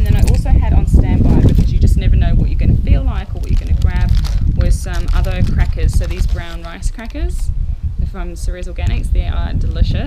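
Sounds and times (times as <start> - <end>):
wind rumbling on microphone: 0.0 - 10.0
woman talking: 0.0 - 10.0.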